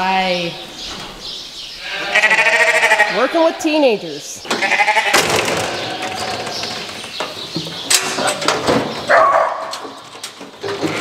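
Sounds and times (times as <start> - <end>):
lamb bleating: 1.8 - 3.9, 4.5 - 6.4.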